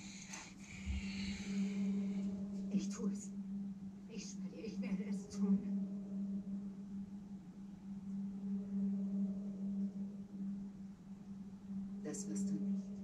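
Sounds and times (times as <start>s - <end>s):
low droning soundtrack tone: 0.0s - 13.0s.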